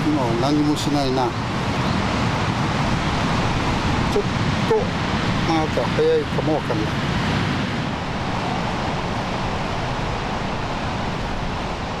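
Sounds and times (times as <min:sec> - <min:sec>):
sea surf washing: 0:00.0 - 0:12.0
wind buffeting microphone: 0:00.0 - 0:12.0.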